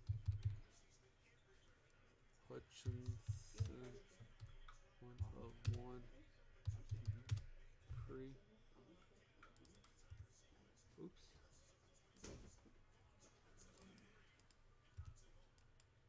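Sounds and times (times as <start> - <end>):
keyboard typing: 0.0 - 0.6, 2.8 - 6.0, 6.6 - 7.6, 9.4 - 10.3.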